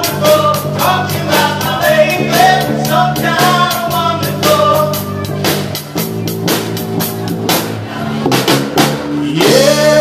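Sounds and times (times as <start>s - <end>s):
drum kit with cymbal hits: 0.0s - 10.0s
electric bass: 0.0s - 10.0s.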